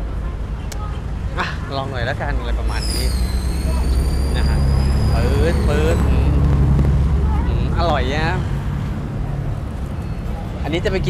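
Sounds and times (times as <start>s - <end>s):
engine low rumble: 0.0s - 11.0s
high-pitched whine: 2.7s - 8.4s
man speaking: 4.3s - 6.5s, 7.4s - 8.5s.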